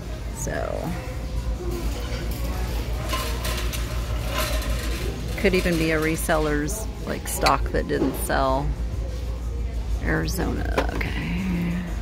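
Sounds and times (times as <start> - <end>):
shopping cart rolling: 1.9 - 8.2.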